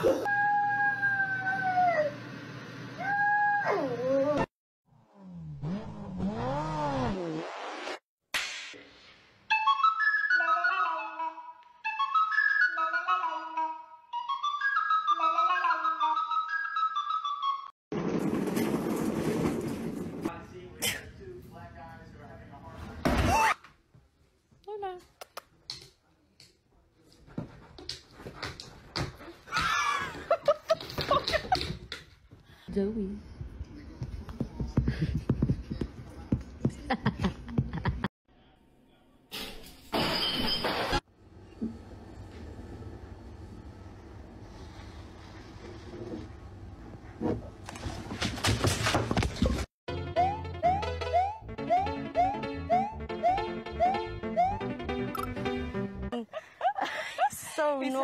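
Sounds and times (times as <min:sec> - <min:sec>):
small dog howling: 0:00.2 - 0:02.2.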